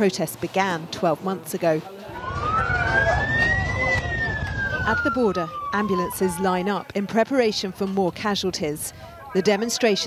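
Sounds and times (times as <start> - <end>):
murmur of outdoor crowd: 0.0 - 10.0
ambulance siren wailing: 2.1 - 6.8.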